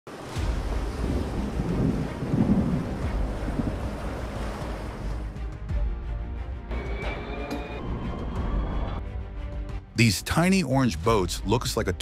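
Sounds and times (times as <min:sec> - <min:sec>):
waves breaking: 0:00.1 - 0:05.6
strong wind on microphone: 0:00.5 - 0:05.1.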